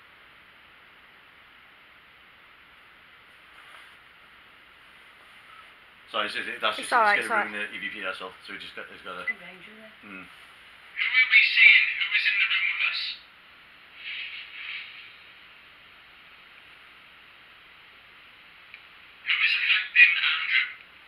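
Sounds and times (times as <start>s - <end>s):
tinny speech-like playback: 6.1s - 13.3s, 19.2s - 20.8s.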